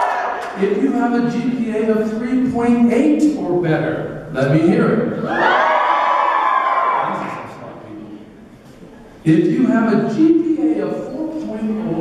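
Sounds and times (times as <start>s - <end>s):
crowd cheering and shouting: 0.0s - 0.6s, 5.2s - 7.5s.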